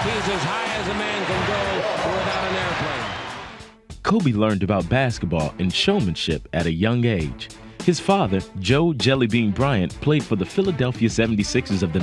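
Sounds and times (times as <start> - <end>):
crowd noise: 0.0 - 3.6.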